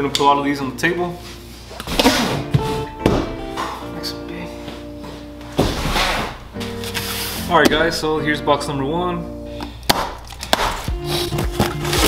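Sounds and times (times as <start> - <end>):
background music: 0.0 - 12.0
cardboard rustling: 5.6 - 7.5, 10.3 - 12.0.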